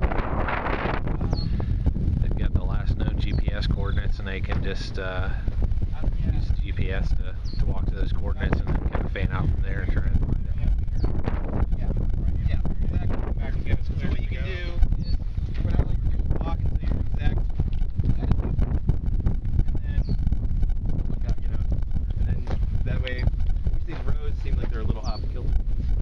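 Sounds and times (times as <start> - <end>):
wind buffeting microphone: 0.0 - 26.0
people talking indistinctly: 1.1 - 25.6.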